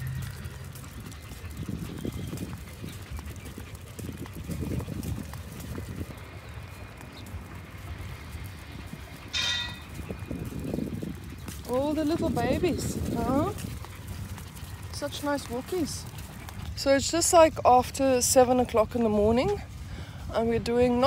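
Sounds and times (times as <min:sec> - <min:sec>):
dogs' paws tapping: 0:00.0 - 0:19.8
footsteps on paving stones: 0:00.0 - 0:21.0
low thumps: 0:09.3 - 0:10.2.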